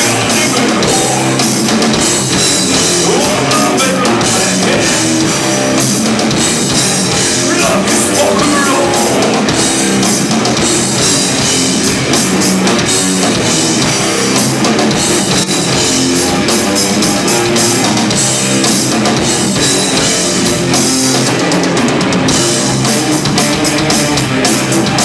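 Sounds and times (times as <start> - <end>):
bass guitar: 0.0 - 25.0
drum kit: 0.0 - 25.0
electric guitars: 0.0 - 25.0.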